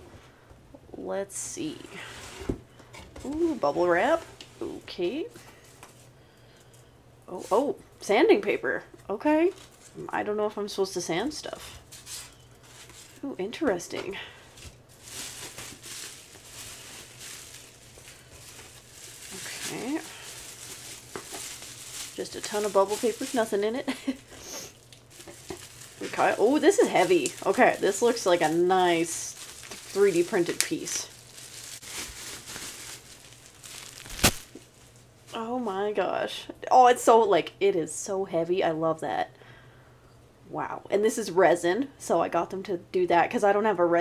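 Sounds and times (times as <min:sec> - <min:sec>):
bubble wrap rustling and crinkling: 0:09.3 - 0:10.0, 0:11.6 - 0:35.4.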